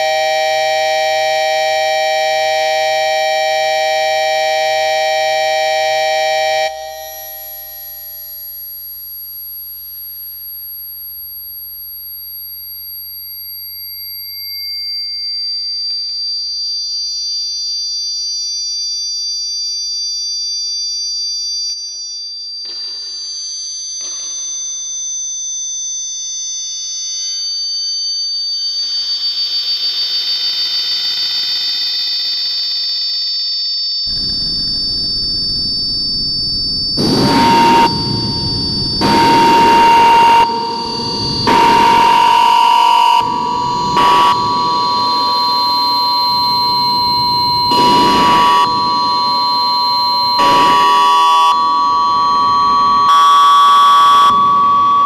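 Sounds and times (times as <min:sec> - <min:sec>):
experimental electronic drone music: 0:34.1 - 0:53.2.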